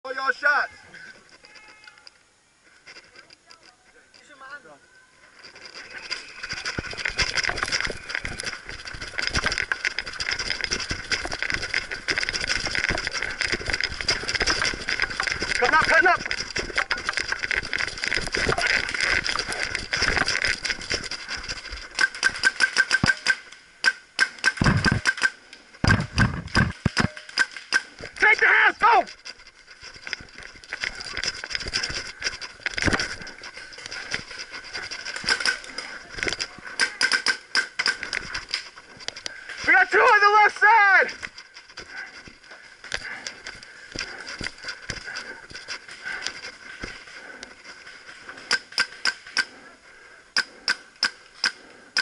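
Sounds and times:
person shouting: 28.2s - 29.1s, 39.7s - 41.1s
paintball markers firing: 35.1s - 38.4s.

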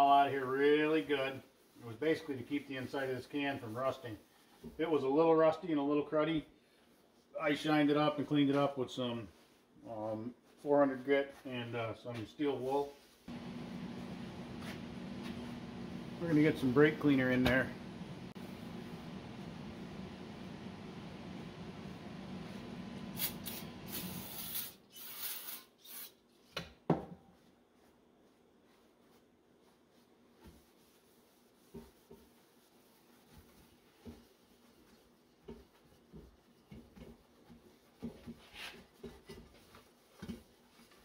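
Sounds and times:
paper towel rubbing metal: 12.4s - 17.7s, 27.4s - 41.0s
steady background hum: 13.3s - 24.0s
spray can hissing bursts: 23.1s - 26.2s.

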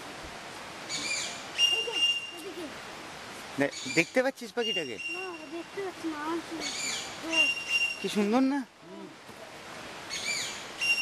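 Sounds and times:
birds whistling: 0.9s - 2.5s, 3.7s - 5.6s, 6.6s - 8.1s, 10.1s - 11.0s.

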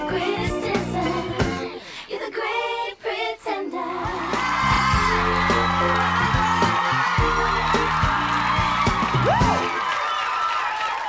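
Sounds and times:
walk-on music with synth bass: 4.1s - 9.7s
audience cheering and whooping: 4.1s - 11.0s.

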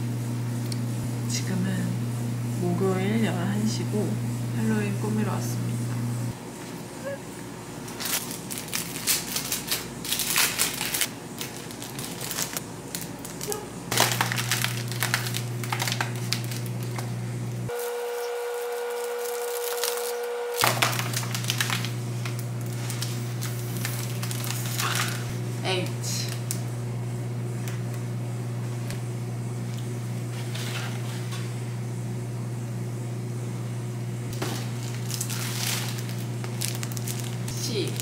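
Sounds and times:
steady low hum: 0.0s - 38.0s
foil balloons crinkling: 7.9s - 26.6s, 34.3s - 38.0s.

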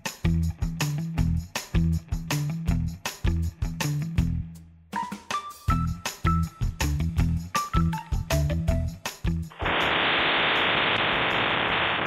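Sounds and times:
static hiss: 9.5s - 12.0s.

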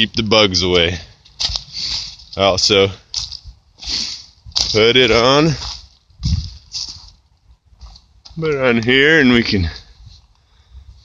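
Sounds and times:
footsteps on dry leaves: 1.0s - 8.5s.

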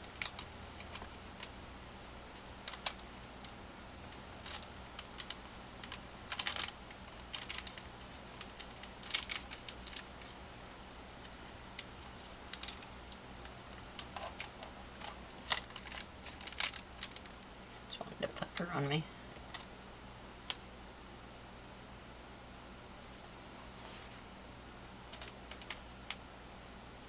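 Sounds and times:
needle clicking through paper: 0.0s - 1.6s, 4.1s - 10.4s
paper rustling: 4.4s - 10.4s, 14.0s - 17.8s.

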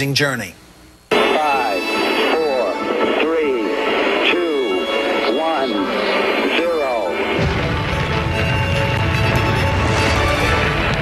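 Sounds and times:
thin radio-like voice: 1.1s - 7.4s.

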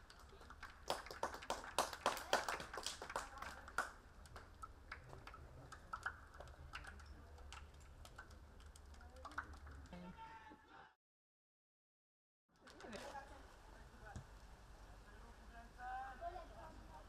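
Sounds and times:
crowd clapping: 0.0s - 10.0s.

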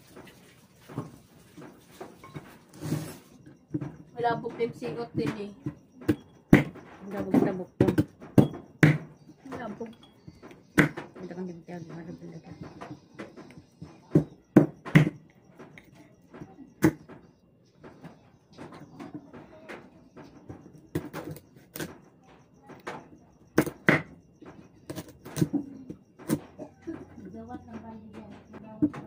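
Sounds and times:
knife chopping on wooden board: 10.7s - 11.0s.

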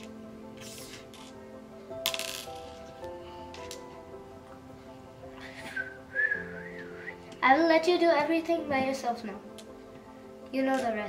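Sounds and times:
background music with held notes: 0.0s - 11.0s.

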